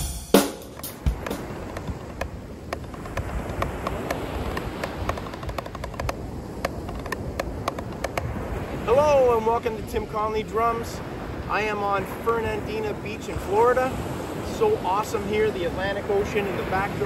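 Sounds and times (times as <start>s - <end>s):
loud drum kit hit: 0.0s - 1.4s
drumsticks tapping practice pad: 0.0s - 8.3s
ocean surf: 0.0s - 17.0s
wind on microphone: 0.7s - 17.0s.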